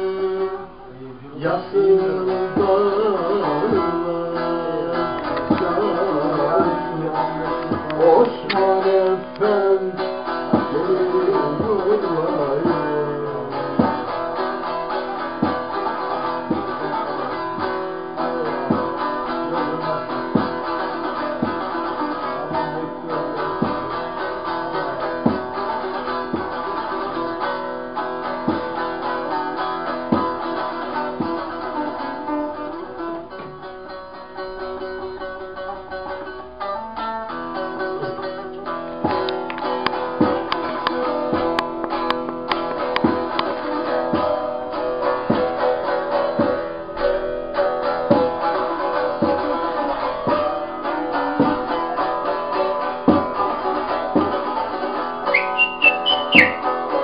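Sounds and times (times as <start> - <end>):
long-necked lute strummed and plucked: 0.0 - 57.0
person singing: 0.3 - 14.0, 55.3 - 56.8.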